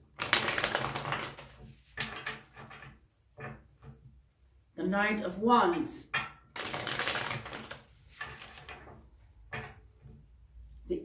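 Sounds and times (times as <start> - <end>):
cards being riffle-shuffled: 0.1 - 2.8, 6.6 - 8.9
cards rustling: 0.2 - 1.6, 6.6 - 8.8.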